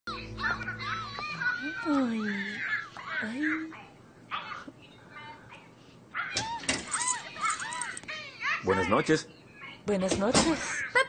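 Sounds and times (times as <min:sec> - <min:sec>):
background music chord: 0:00.1 - 0:01.2.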